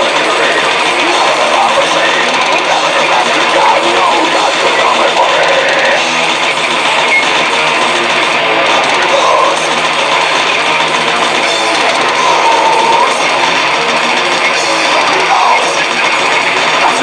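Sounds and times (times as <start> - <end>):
death metal band playing: 0.0 - 17.0
distorted electric guitars: 0.0 - 17.0.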